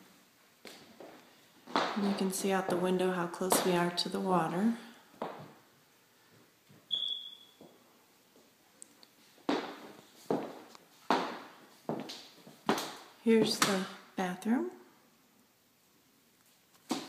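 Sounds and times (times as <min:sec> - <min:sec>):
footsteps walking: 0:00.0 - 0:04.2, 0:07.5 - 0:13.9
high squeak: 0:06.9 - 0:07.6.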